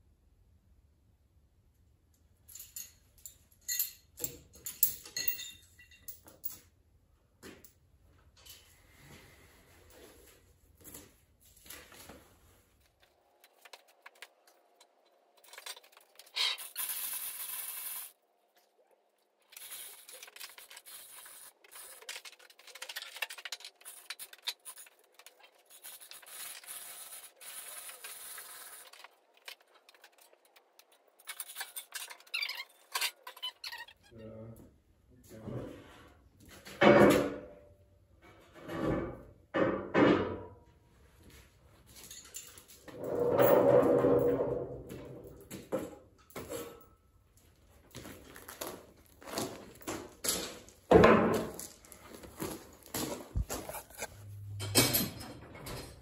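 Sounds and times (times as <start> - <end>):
metal chain rattling and clinking: 2.4 - 6.7, 19.5 - 33.8, 41.9 - 56.0.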